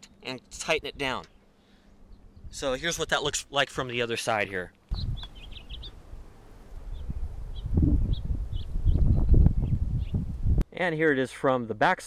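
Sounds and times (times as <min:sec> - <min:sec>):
low rumble and thumps on microphone: 0:04.9 - 0:05.8, 0:06.9 - 0:10.6
faint bird chirps: 0:04.9 - 0:06.0.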